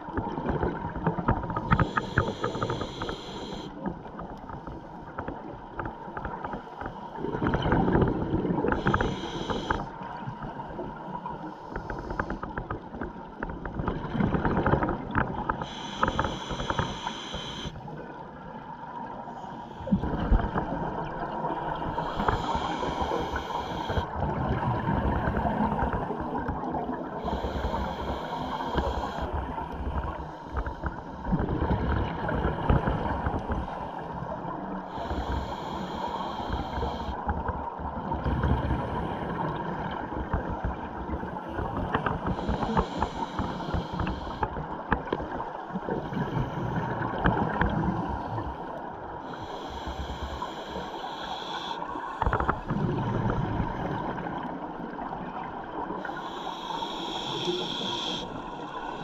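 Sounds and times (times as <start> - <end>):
exhaled bubbles rumbling underwater: 0.0 - 59.0
scuba regulator hiss: 1.8 - 3.7, 8.8 - 9.9, 15.6 - 17.8, 22.0 - 24.1, 27.2 - 29.3, 34.9 - 37.2, 42.4 - 44.4, 49.3 - 52.4, 56.0 - 59.0.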